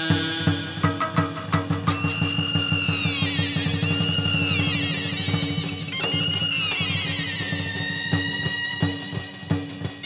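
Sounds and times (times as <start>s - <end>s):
fast drum roll: 0.0s - 10.0s
sharp percussion strikes: 0.0s - 10.0s.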